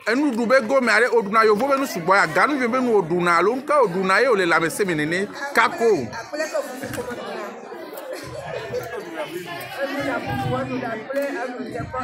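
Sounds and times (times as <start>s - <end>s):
several voices chattering: 0.0s - 12.0s.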